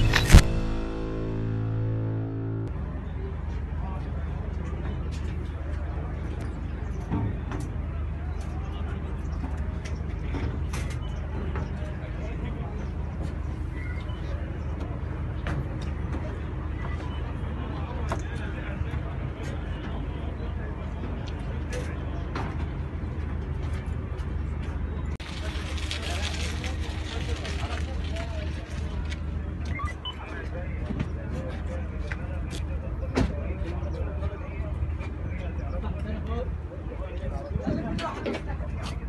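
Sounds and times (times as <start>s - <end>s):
logo music sting: 0.0s - 3.5s
low hum: 0.0s - 4.2s
faint voices: 2.7s - 39.0s.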